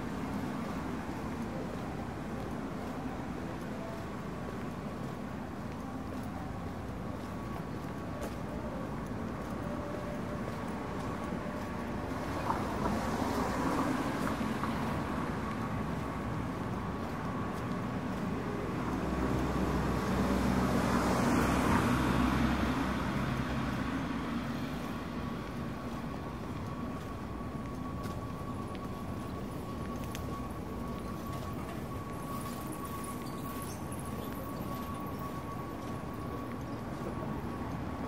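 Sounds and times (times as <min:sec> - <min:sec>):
steady street hum: 0:00.0 - 0:38.0.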